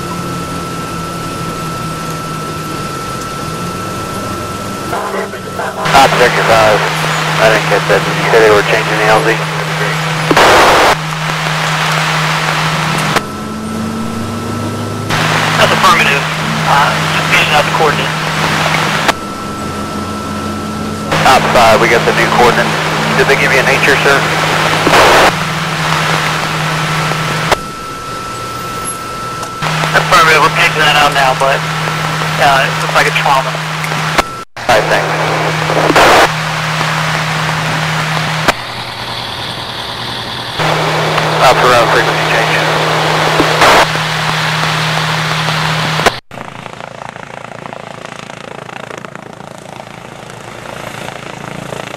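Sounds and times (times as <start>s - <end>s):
fire engine running: 0.0s - 51.9s.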